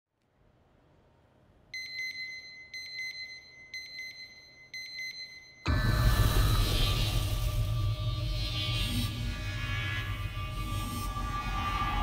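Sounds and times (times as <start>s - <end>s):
electronic alarm beeping: 1.8s - 6.0s
loud music with low drone: 5.7s - 12.0s.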